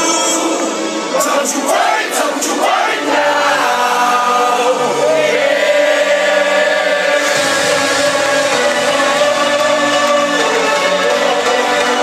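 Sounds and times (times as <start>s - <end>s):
sung vocal line: 0.0s - 12.0s.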